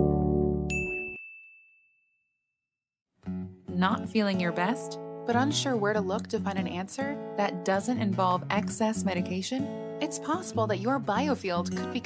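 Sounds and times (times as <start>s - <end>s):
high bright ding: 0.7s - 2.2s.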